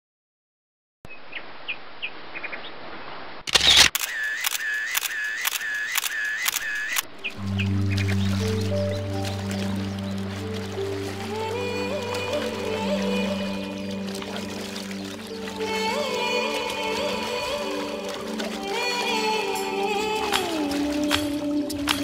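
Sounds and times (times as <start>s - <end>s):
camera shutter clicks: 3.5s - 7.1s
water splashing: 3.6s - 22.0s
music with low chords: 7.1s - 22.0s.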